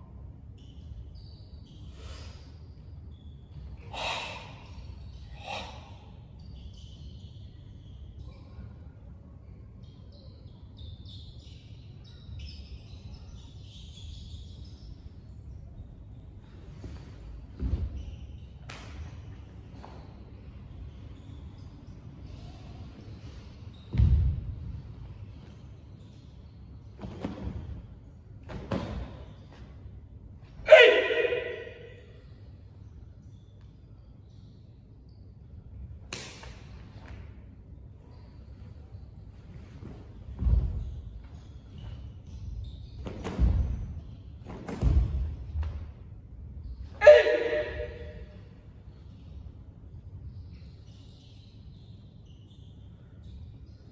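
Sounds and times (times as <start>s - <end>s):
person shouting with echo: 30.6s - 32.0s, 47.0s - 48.4s.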